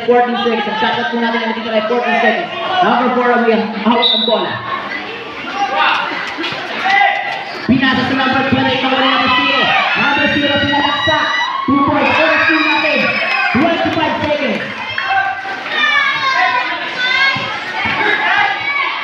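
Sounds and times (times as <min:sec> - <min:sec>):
crowd shouting and cheering: 0:00.0 - 0:19.0.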